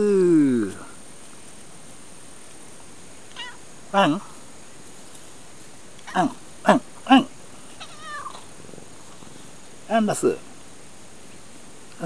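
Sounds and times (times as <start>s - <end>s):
cat meowing: 3.3s - 3.6s, 7.8s - 8.5s.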